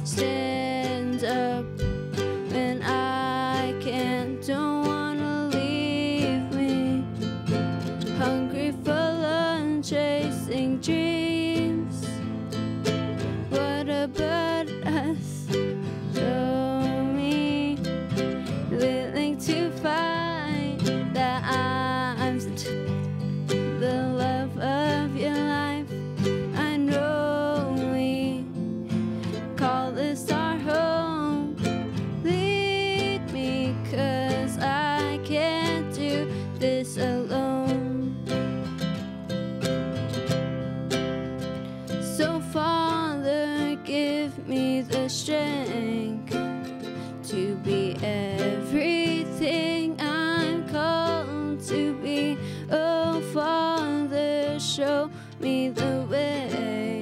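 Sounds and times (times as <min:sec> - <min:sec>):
woman and girl singing: 0:00.0 - 0:07.4, 0:08.0 - 0:12.3, 0:13.4 - 0:22.9, 0:23.5 - 0:28.6, 0:29.2 - 0:38.6, 0:41.9 - 0:57.0
plucked string instrument: 0:00.0 - 0:57.0
strummed acoustic guitar: 0:00.0 - 0:57.0.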